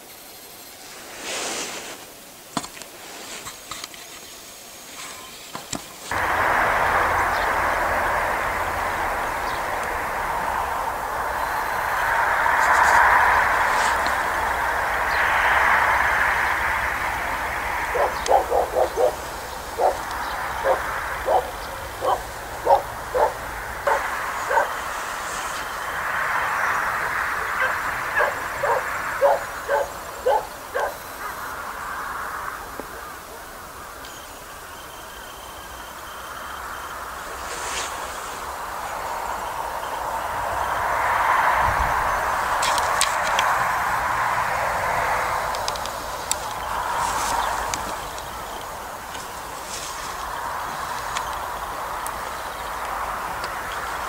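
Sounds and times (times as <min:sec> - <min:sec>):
steady rushing noise: 0:00.0 - 0:34.6, 0:35.9 - 0:54.0
dog barking: 0:17.9 - 0:24.8, 0:27.5 - 0:31.0.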